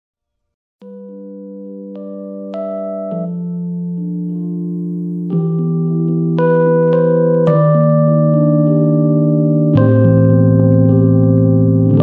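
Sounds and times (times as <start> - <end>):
electronic keyboard sustained chords: 0.8 - 12.0.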